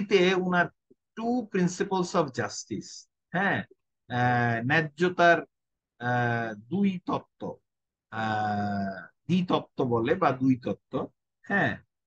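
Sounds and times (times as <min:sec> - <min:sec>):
man speaking: 0:00.0 - 0:11.9.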